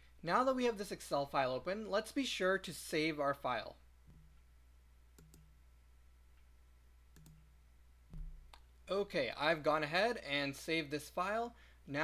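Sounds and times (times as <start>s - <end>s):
computer mouse clicks: 5.1s - 5.5s, 7.1s - 7.5s
brief low thump: 8.1s - 8.5s.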